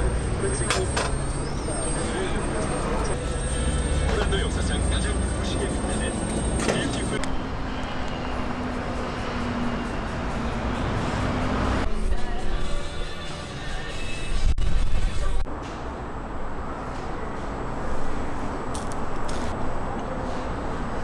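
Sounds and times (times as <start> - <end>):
indistinct voices: 0.0 - 7.3
low traffic rumble: 0.0 - 12.1.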